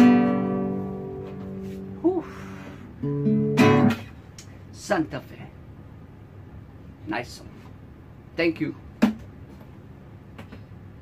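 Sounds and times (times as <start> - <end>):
acoustic guitar strumming: 0.0 - 2.0, 2.8 - 4.2
man speaking: 4.7 - 5.6, 7.0 - 7.7, 8.4 - 8.9.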